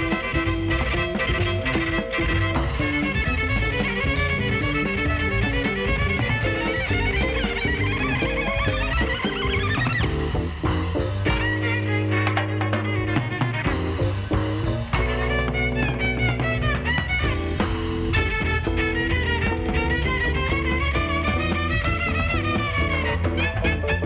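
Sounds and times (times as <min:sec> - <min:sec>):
bowed violin: 0:00.0 - 0:24.0
drum kit: 0:00.0 - 0:24.0
upright bass: 0:00.0 - 0:24.0.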